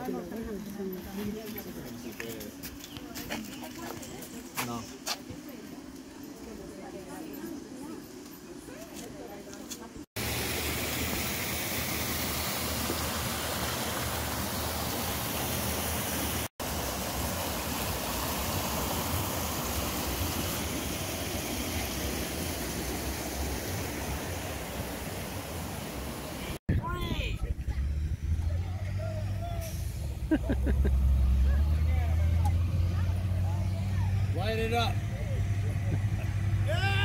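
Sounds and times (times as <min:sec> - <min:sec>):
water rushing over rocks: 0:10.2 - 0:26.6
low hum of vehicle engines: 0:27.1 - 0:37.0.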